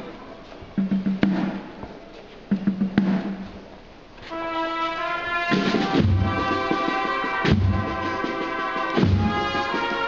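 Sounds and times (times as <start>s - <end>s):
drums: 0.0s - 10.0s
brass band sustained chord: 4.2s - 10.0s.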